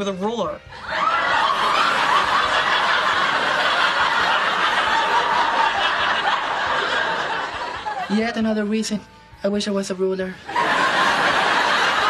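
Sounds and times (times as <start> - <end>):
studio audience laughing: 0.8 - 8.1, 10.5 - 12.0.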